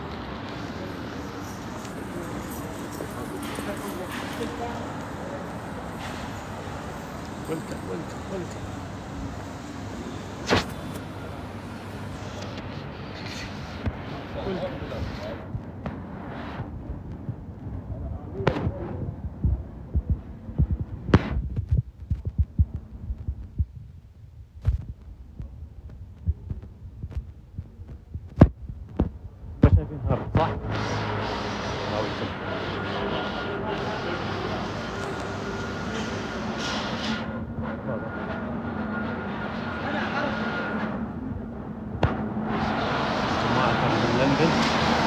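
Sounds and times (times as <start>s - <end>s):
street background hum: 0.0s - 45.0s
phone microphone jostling thumps: 19.5s - 23.9s, 24.6s - 25.0s.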